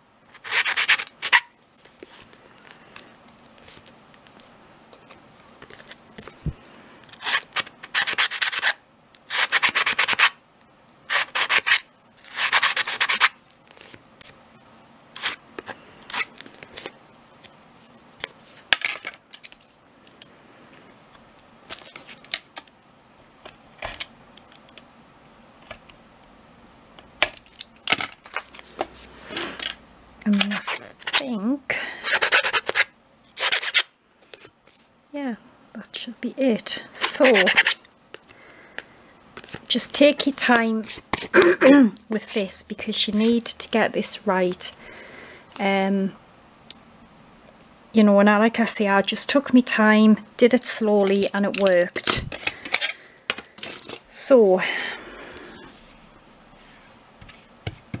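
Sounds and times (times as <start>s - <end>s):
metal nail file rasping chipboard: 7.1s - 10.4s, 11.1s - 13.4s, 32.0s - 33.9s, 37.0s - 37.8s.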